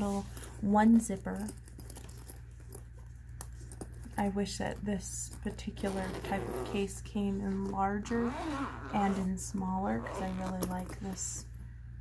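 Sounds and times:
fabric pencil case handling: 0.0 - 4.2, 5.3 - 11.2.

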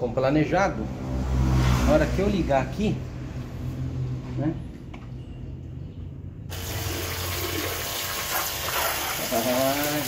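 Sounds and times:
water jet splashing into tub: 6.5 - 10.0.

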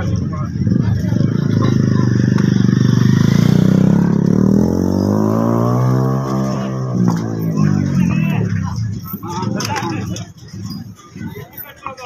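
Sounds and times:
engine running with pulsing beat: 0.0 - 11.3.

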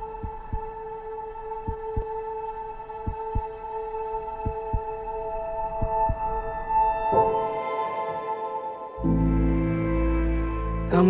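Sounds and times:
heartbeat low thumps: 0.0 - 0.7, 1.7 - 2.2, 3.0 - 3.6, 4.4 - 5.0, 5.8 - 6.4
sustained drone: 0.0 - 7.2.

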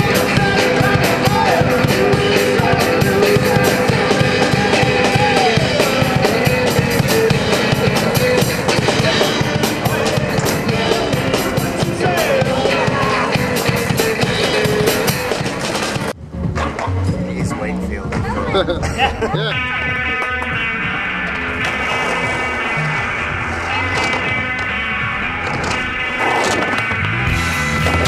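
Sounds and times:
voices: 0.0 - 16.0, 16.9 - 27.0
rock music with drums and guitar: 0.0 - 28.0
street sound: 0.0 - 28.0.

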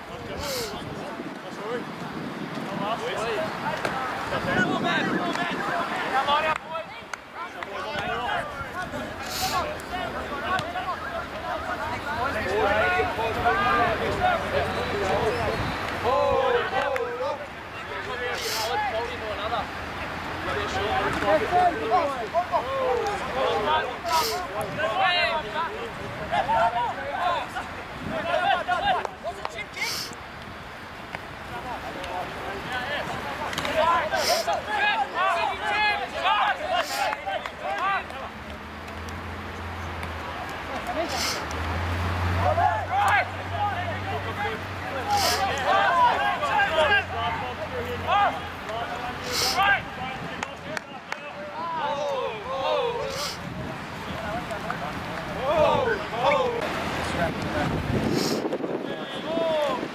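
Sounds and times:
young men shouting calls: 2.6 - 38.6, 42.2 - 58.0, 58.6 - 59.9.

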